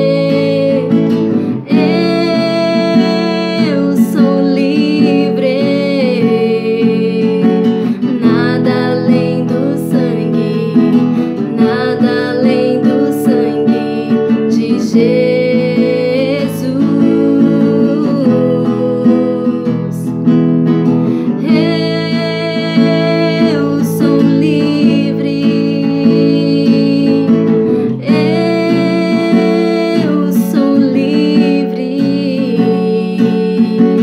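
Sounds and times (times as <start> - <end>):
classical guitar strumming: 0.0 - 34.0
woman singing: 0.0 - 34.0.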